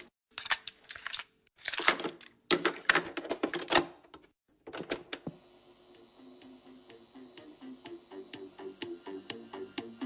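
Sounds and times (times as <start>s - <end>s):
quiet music with low notes: 5.8s - 10.0s.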